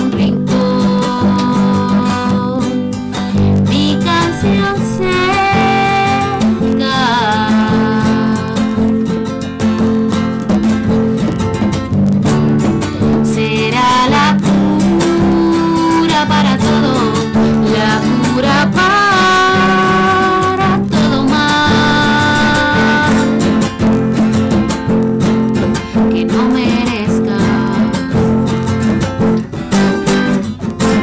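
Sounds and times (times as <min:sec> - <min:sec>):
acoustic guitars playing: 0:00.0 - 0:31.0.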